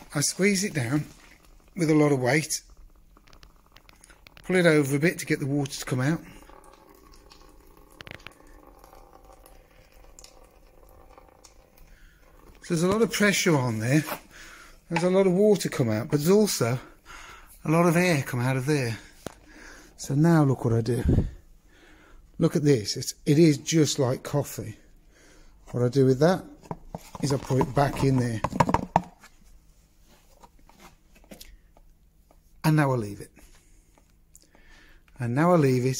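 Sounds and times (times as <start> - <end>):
crackling squelch: 0.0 - 4.7.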